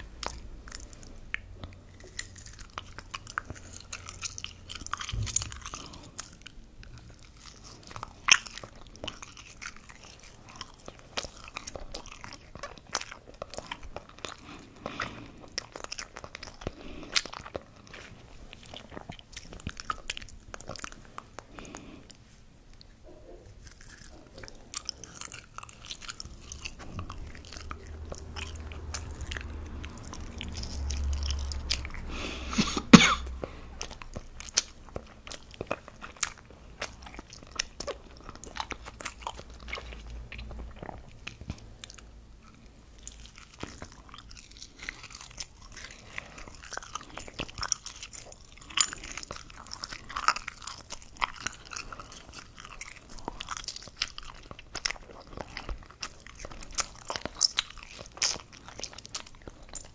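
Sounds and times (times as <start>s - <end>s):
close chewing with wet mouth clicks: 0.0s - 59.9s.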